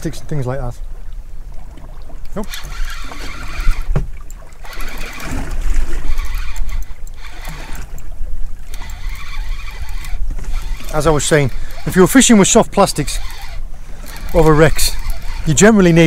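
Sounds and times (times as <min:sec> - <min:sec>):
fishing reel winding: 0:02.3 - 0:05.4, 0:06.0 - 0:16.0.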